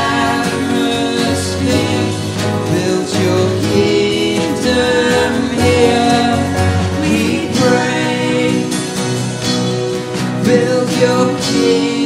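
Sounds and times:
man singing: 0.0 - 9.6, 10.2 - 12.0
acoustic guitars: 0.0 - 12.0
drum kit: 0.0 - 12.0
keyboard playing: 0.0 - 12.0.

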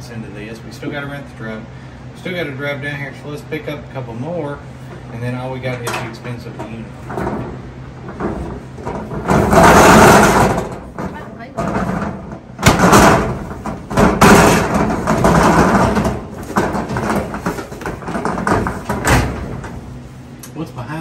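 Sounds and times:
metal roll-up door rattling: 5.6 - 20.0
sharp metallic clanks: 5.7 - 19.8.

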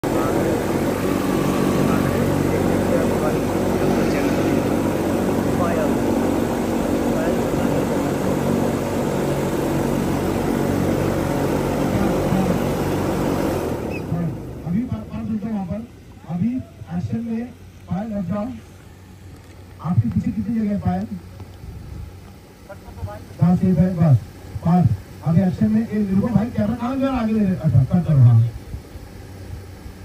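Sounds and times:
faint voices: 0.0 - 8.6
steady engine drone: 0.0 - 30.0.

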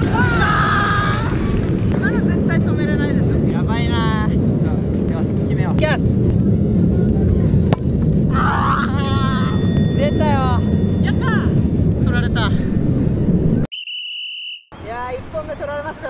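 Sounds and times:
people shouting and reacting: 0.0 - 2.6, 7.2 - 11.6
wind rumbling on microphone: 0.0 - 13.7.

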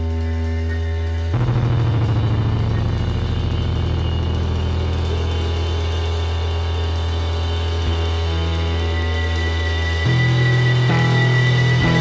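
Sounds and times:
heavy psychedelic rock music: 0.0 - 12.0.

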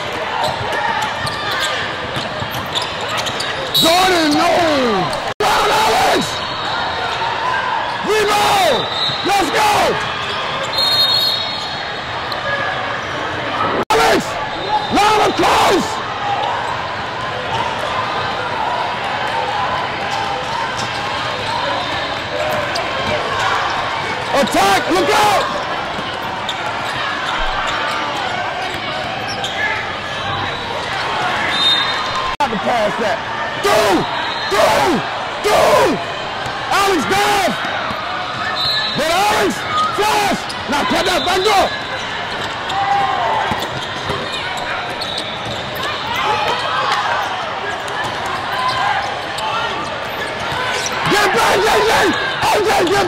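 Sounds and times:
crowd chatter echoing: 0.0 - 53.0.

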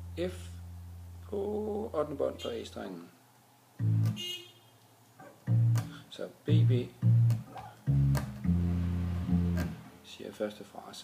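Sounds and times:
electric bass guitar notes: 0.0 - 2.2, 3.8 - 4.2, 5.3 - 10.1.

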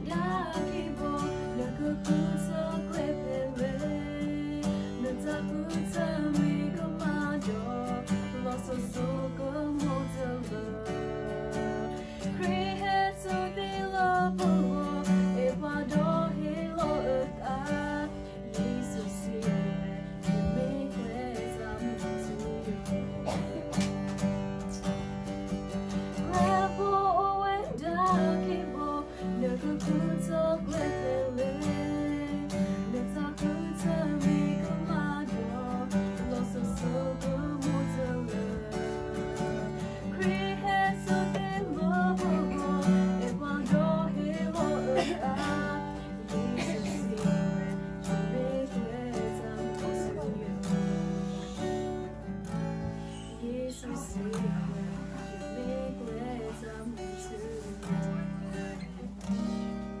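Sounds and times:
acoustic guitar strumming: 0.0 - 60.0
woman singing: 0.0 - 60.0.

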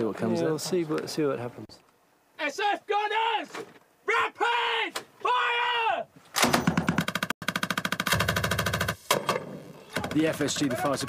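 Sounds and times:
machine gun rapid fire: 6.4 - 9.4, 10.0 - 11.0.

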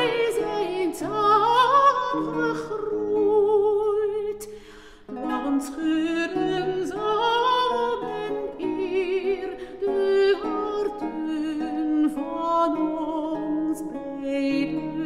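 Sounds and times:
lute: 0.0 - 15.0
woman singing with wide vibrato: 0.0 - 15.0.

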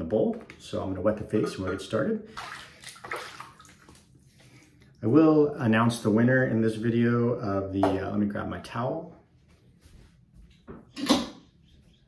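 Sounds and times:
water splashing at a sink: 0.6 - 4.7.

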